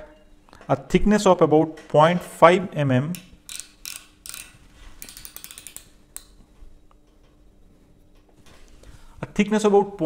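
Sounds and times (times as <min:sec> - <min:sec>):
ratchet clicking: 0:03.5 - 0:06.3.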